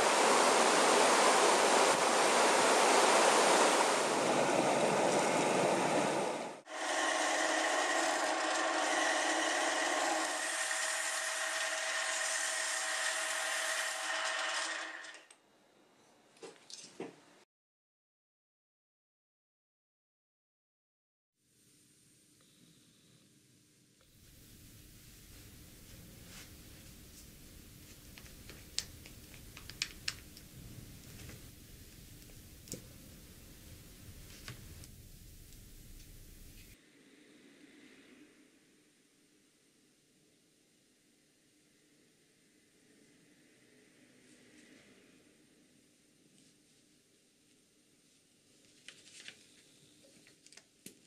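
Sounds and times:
stream water flowing: 0.0 - 5.8
lathe whine: 0.0 - 15.3.

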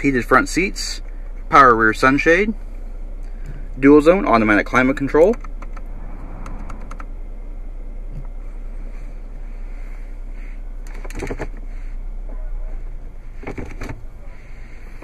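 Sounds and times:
car cabin background noise: 0.0 - 15.0.

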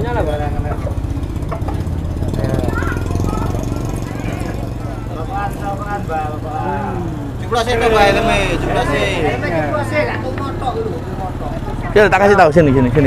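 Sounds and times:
faint background talk: 0.0 - 13.0
vehicle engine idling: 0.0 - 13.0.

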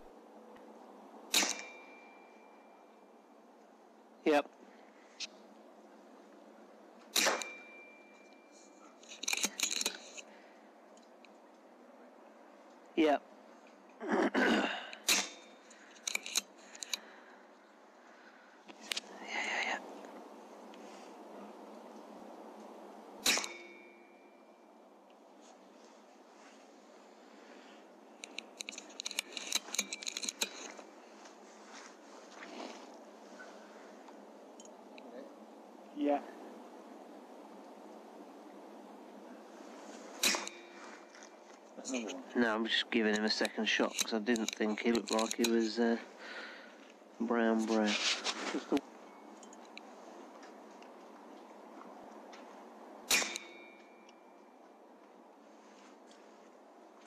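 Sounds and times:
air rifle shot: 1.3 - 1.9, 7.1 - 7.6, 15.0 - 15.5, 23.2 - 23.8, 40.2 - 40.8, 53.0 - 53.6
faint ringing tone: 1.6 - 3.5, 7.4 - 9.0, 23.5 - 24.8, 49.0 - 49.6, 53.4 - 55.0
rifle action clicks: 15.0 - 17.0, 28.2 - 30.7
person speaking: 41.8 - 46.2, 47.2 - 48.8
short noisy rustle: 47.6 - 48.8.

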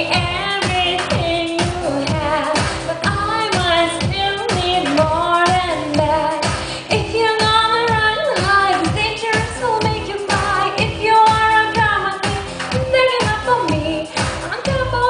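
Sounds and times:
backing music with drum beat: 0.0 - 15.0
woman singing into a microphone: 0.0 - 15.0.

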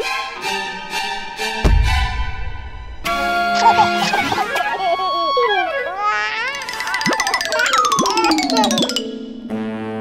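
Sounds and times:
cartoon background music: 3.0 - 4.5, 6.3 - 10.0
comic warbling pitch glides: 6.6 - 9.9.

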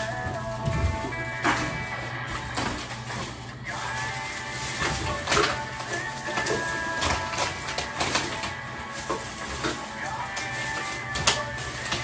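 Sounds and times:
faint background music: 0.0 - 12.0
plastic garbage bag rustling: 0.0 - 12.0.

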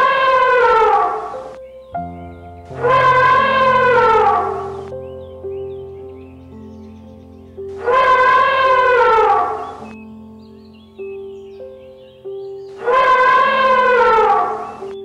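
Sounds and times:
held keyboard notes: 1.2 - 10.2.

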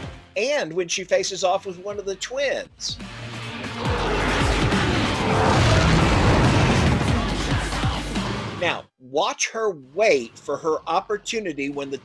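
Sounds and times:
rumble with swooping falling tones: 3.1 - 8.6.

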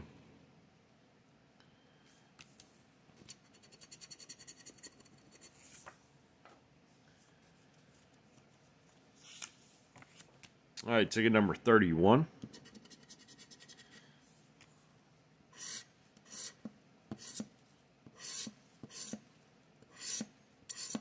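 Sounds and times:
scraper scratching lottery ticket: 12.5 - 14.0, 18.2 - 19.2.

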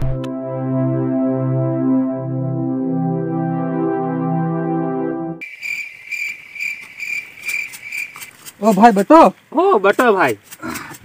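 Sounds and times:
electronic keyboard music: 0.0 - 5.4
insects chirping: 5.4 - 11.0.

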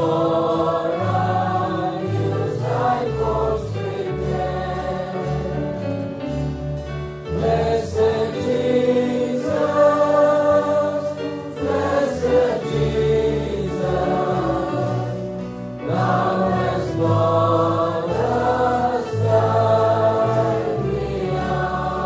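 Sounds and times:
choir singing: 0.0 - 22.0.

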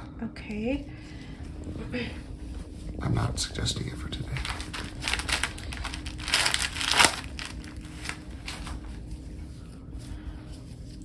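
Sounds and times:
plastic or paper crinkling: 3.8 - 9.2.

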